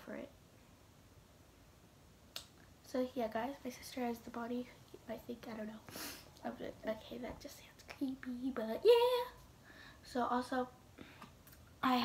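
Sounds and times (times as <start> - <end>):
girl speaking: 0.0 - 0.3, 2.8 - 9.4, 10.0 - 10.8, 11.8 - 12.0.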